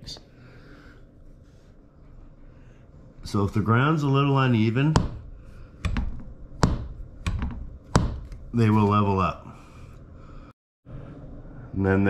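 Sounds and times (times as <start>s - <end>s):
cot legs knocking and clicking: 4.9s - 8.5s.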